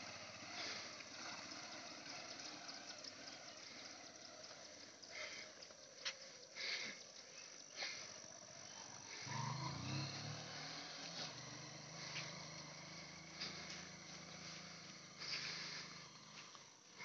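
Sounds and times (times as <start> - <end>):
distant motorcycle engine drone: 0.0 - 17.0.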